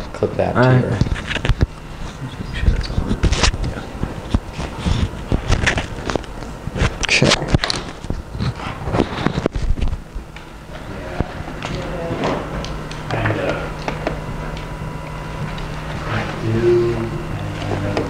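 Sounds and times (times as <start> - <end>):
murmured voices: 10.6 - 18.0.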